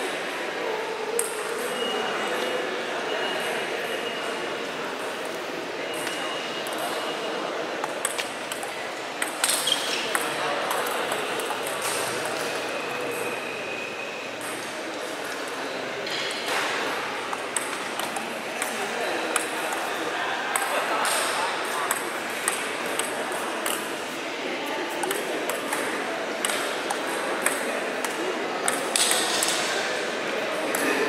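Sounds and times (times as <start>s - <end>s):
people talking: 0.0s - 31.0s
table tennis ball clicking: 17.3s - 19.8s.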